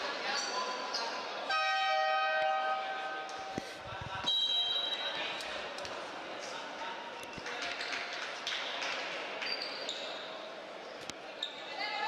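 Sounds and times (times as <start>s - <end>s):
referee's whistle: 4.2s - 5.2s.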